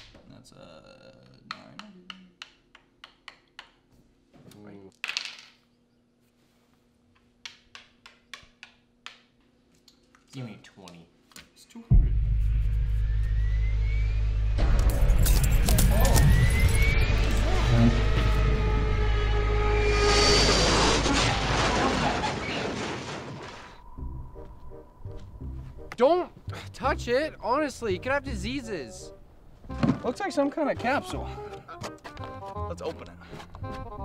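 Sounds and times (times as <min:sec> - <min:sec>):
dice rattling on board: 0:04.9 - 0:05.6
steady held tones: 0:11.9 - 0:20.6
jet-like rushing roar: 0:12.6 - 0:24.9.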